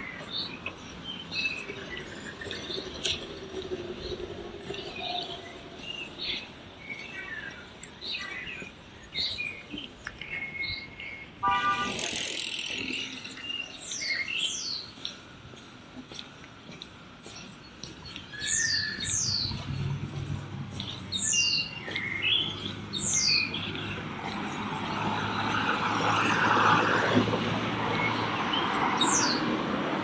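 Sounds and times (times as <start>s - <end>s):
small birds chirping: 0.0s - 11.4s, 12.0s - 29.7s.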